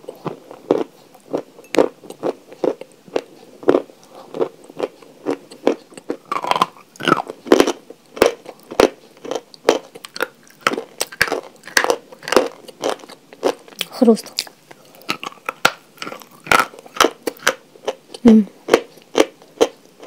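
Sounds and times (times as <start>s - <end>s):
person chewing chalk crunchily: 0.0s - 20.0s.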